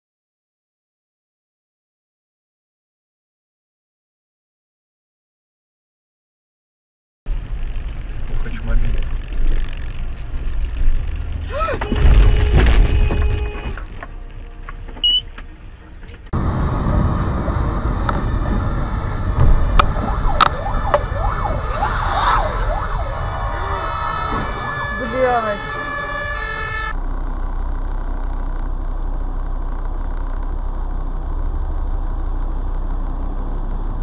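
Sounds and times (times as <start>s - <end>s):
road noise inside car: 7.3s - 34.0s
traffic noise: 7.3s - 34.0s
fire engine siren wailing: 16.4s - 27.0s.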